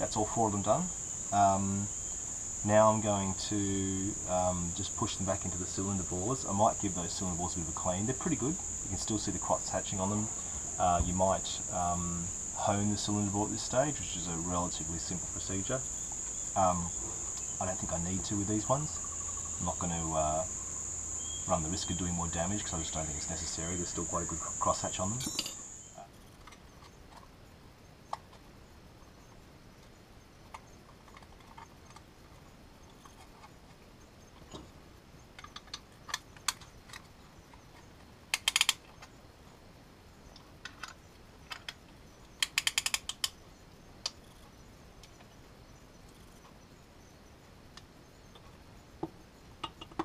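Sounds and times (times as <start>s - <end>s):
metal clinks and taps: 25.2s - 25.7s, 49.6s - 50.0s
ratchet clicking: 38.3s - 38.8s, 42.4s - 43.3s.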